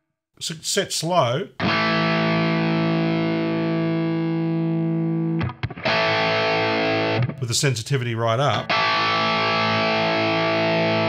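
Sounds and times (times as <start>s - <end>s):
distorted electric guitar chords: 1.6s - 7.4s, 8.5s - 11.0s.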